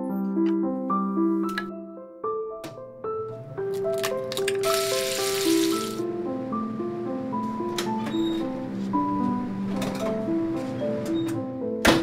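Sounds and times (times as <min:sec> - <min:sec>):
keyboard melody: 0:00.0 - 0:12.0.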